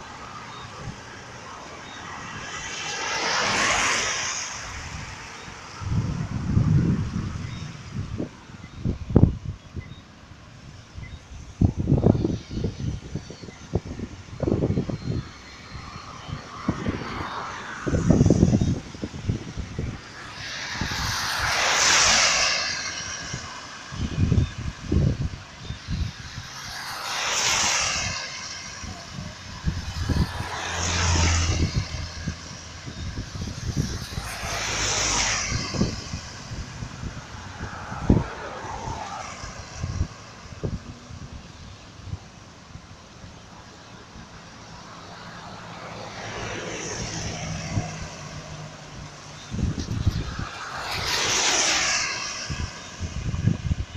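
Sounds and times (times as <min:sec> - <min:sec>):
cars passing on wet road: 0:00.0 - 0:53.9.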